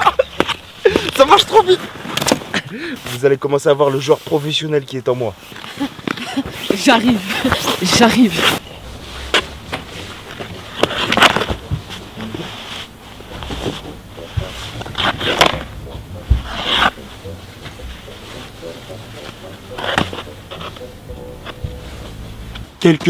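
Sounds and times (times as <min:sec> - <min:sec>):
ice skate blades scraping: 0:05.4 - 0:21.0.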